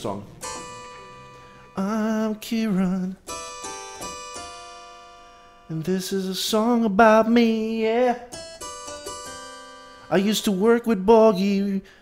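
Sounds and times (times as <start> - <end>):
person singing jingle: 0.0 - 4.2, 5.7 - 9.4, 10.1 - 11.8
keyboard chords ringing: 0.0 - 11.8.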